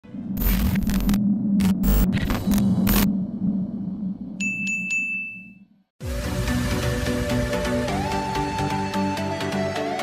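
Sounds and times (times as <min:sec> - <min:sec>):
crackling static bursts: 0:00.4 - 0:03.1.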